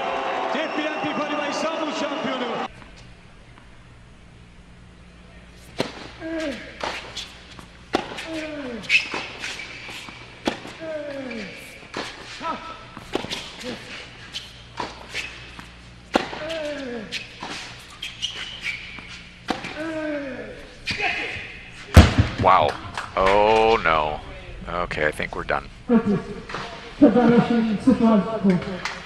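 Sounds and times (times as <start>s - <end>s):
rackets striking tennis ball: 5.7s - 10.8s, 14.7s - 18.0s, 18.6s - 20.0s.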